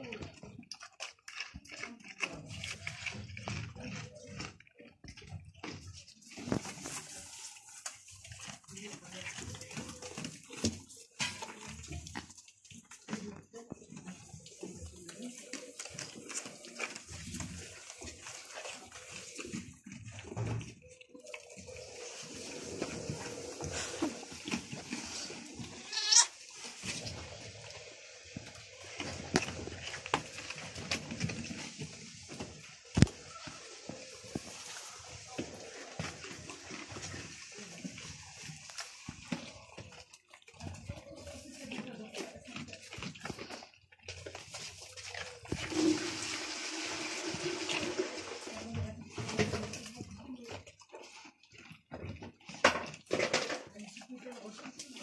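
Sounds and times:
goats moving and feeding: 0:00.0 - 0:55.0
goat bleating: 0:25.7 - 0:26.4.

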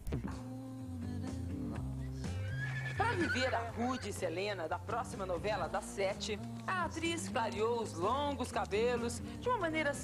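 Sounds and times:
background music with held notes: 0:00.0 - 0:10.0
horse neighing: 0:02.3 - 0:04.3.

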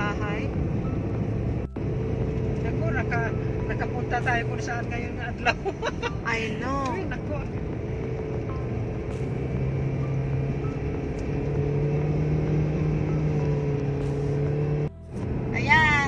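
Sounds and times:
road and engine drone in car: 0:00.0 - 0:16.0.

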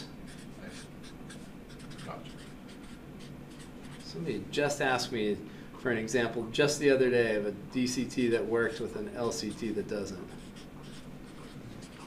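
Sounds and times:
pen scratching on paper: 0:00.3 - 0:04.2, 0:10.3 - 0:12.0.

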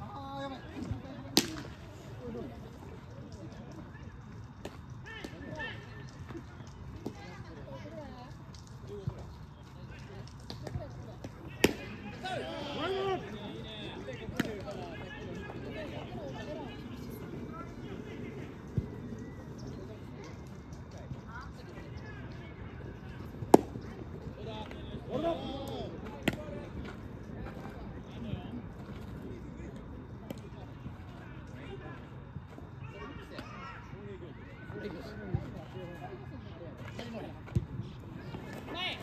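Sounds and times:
players calling out: 0:09.6 - 0:39.0.

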